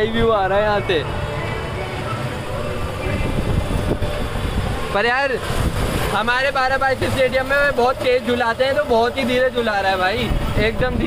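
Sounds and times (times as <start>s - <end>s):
faint voices: 0.0s - 11.0s
wind buffeting microphone: 2.3s - 7.7s, 10.1s - 11.0s.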